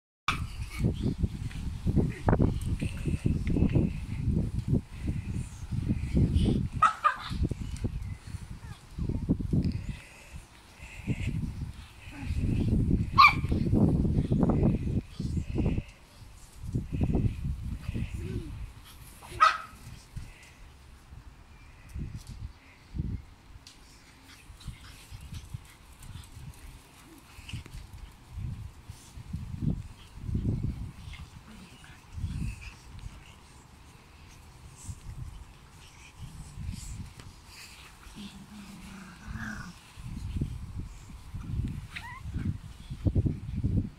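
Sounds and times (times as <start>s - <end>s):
small dog barking: 6.8s - 7.3s, 13.2s - 13.5s, 19.4s - 19.8s
dog growling low: 38.1s - 39.8s.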